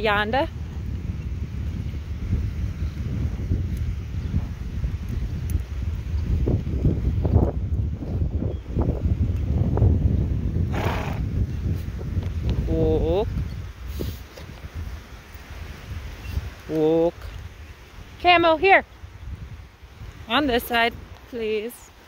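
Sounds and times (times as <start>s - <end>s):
wind on microphone: 0.0s - 22.0s.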